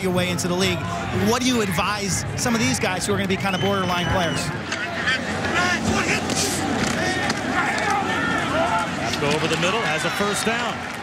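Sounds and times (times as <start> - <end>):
stadium crowd noise: 0.0 - 11.0
indistinct shouted voices: 4.0 - 9.2.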